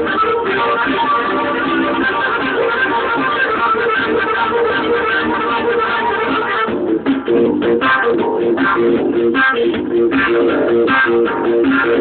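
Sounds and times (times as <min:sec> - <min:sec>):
guitar and bass riff: 0:00.0 - 0:12.0.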